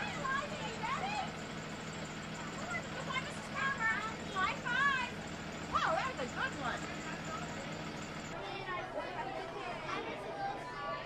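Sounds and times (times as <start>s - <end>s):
bus engine idling: 0.0s - 8.4s
children and adults chattering: 0.0s - 11.0s.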